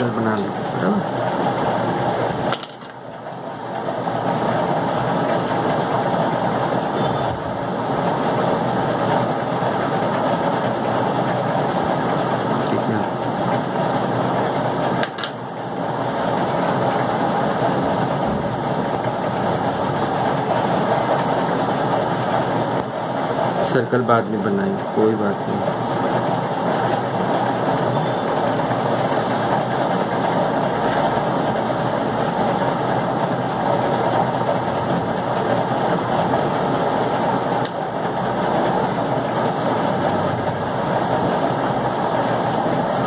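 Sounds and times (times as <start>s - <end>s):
machine whirring: 0.0s - 43.0s.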